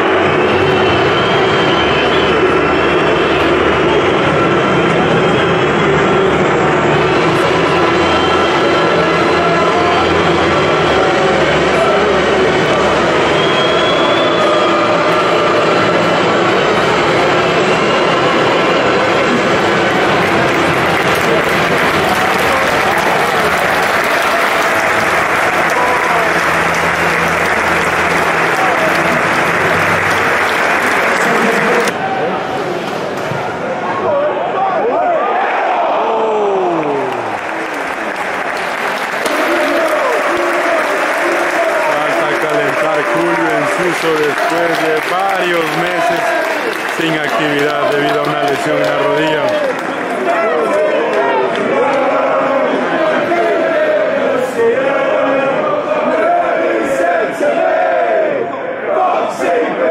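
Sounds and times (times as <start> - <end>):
crowd clapping: 0.0 - 32.2, 36.5 - 54.3
crowd chanting: 33.5 - 59.9.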